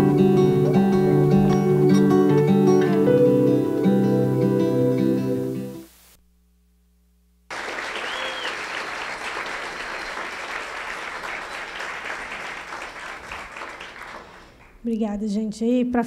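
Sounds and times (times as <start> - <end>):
music: 0.0 - 5.9
audience applause: 7.5 - 14.8.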